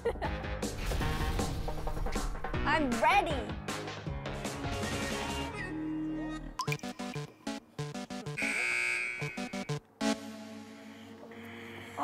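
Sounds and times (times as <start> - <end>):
bouncy plucked music: 6.6 - 8.4
buzzing electronic tone: 8.3 - 9.8.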